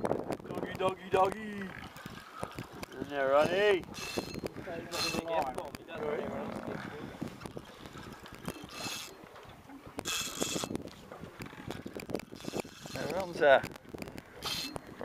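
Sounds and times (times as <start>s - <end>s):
fishing reel whirring: 1.6s - 5.4s, 7.6s - 9.3s, 10.0s - 13.4s, 14.1s - 15.0s.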